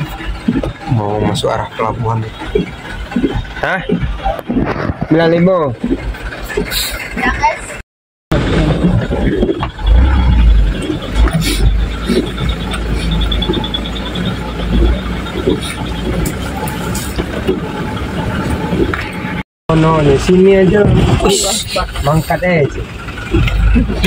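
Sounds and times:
cab knocking and rattling: 0.0 - 7.7, 8.3 - 19.4
truck engine and road rumble: 0.0 - 24.0.

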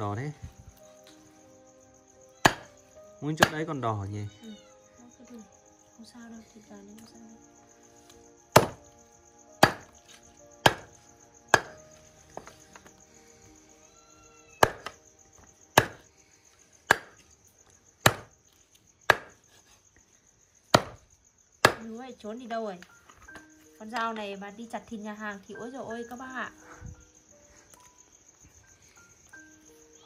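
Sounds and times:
knife chopping on wooden block: 2.4 - 2.7, 8.6 - 8.8, 9.6 - 9.9, 10.6 - 10.9, 11.5 - 11.8, 14.6 - 15.0, 15.8 - 16.0, 16.9 - 17.2, 18.0 - 18.3, 19.1 - 19.4, 20.7 - 21.0, 21.6 - 21.8.

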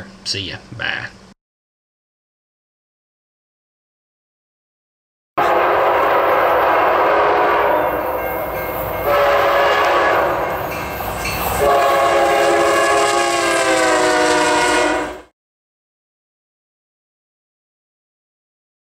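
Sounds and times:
locomotive air horn blasts: 5.4 - 10.7, 11.6 - 15.3.

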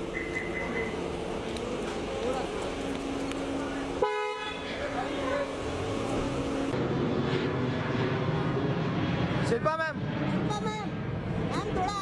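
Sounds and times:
street noise: 0.0 - 12.0
people's voices: 0.3 - 6.7
car horn toot: 4.0 - 4.8.

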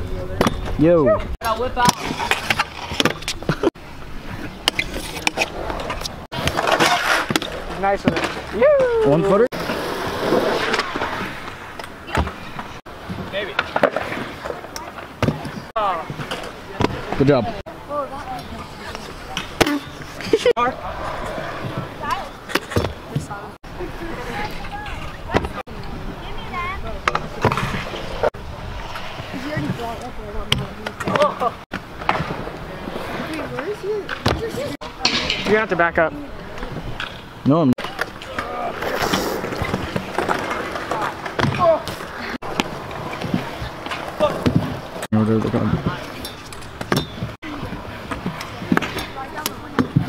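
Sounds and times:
scooter wheels rolling on concrete: 0.0 - 50.0
scooters clacking on ramp edges: 37.8 - 50.0.

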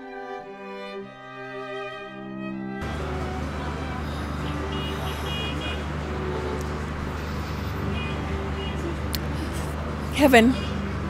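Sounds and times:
low outdoor hum and rumble: 2.8 - 11.0.

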